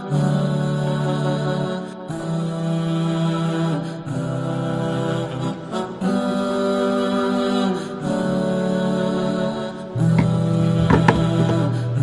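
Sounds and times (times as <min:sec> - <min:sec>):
voices singing in close harmony: 0:00.0 - 0:12.0.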